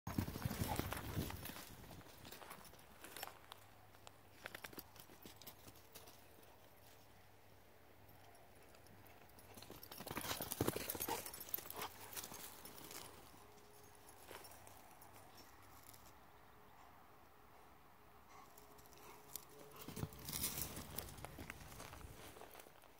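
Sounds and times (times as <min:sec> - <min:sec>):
footsteps crunching on dry dirt: 0:00.1 - 0:05.1, 0:19.7 - 0:22.9.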